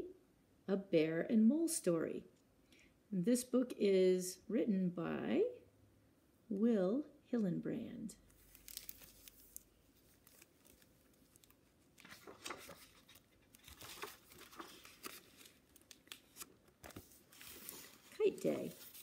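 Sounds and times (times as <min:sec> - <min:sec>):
page turning: 0:08.3 - 0:19.0
plastic book jacket crinkling: 0:08.3 - 0:19.0.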